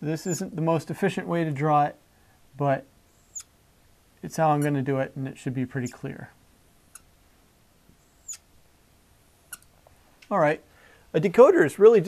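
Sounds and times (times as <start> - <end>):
marker squeaking on whiteboard: 3.2 - 3.5, 8.0 - 8.5.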